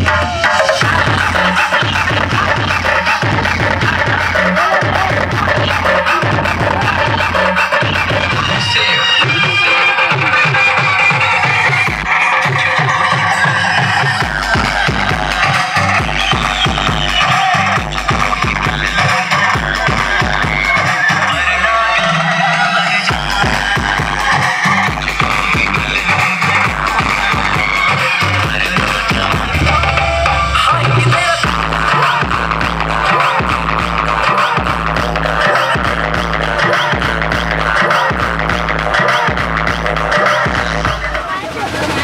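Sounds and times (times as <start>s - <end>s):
deep pulsing bass line: 0.0s - 8.6s, 14.2s - 22.5s, 23.1s - 41.3s
dance music over loudspeakers: 0.0s - 42.0s.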